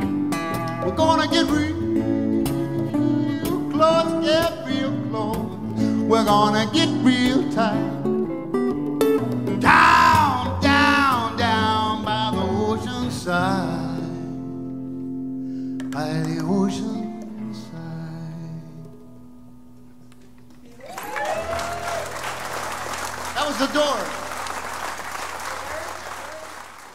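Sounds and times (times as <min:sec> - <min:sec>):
acoustic band playing: 0:00.0 - 0:26.9
person singing melody: 0:00.8 - 0:08.1
audience applauding and cheering: 0:20.5 - 0:26.9.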